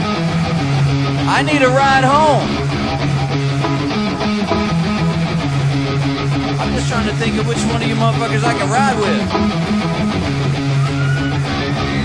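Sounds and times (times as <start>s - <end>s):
electric guitar riff: 0.0s - 12.0s.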